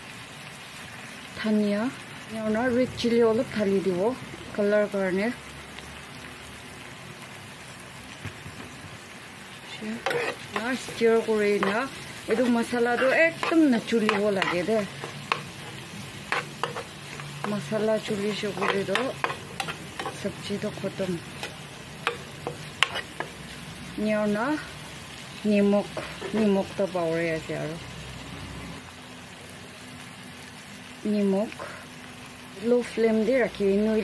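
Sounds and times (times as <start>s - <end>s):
vegetables sizzling in a pan: 0.0s - 34.0s
spatula scraping a pan: 9.8s - 23.4s, 25.8s - 26.6s.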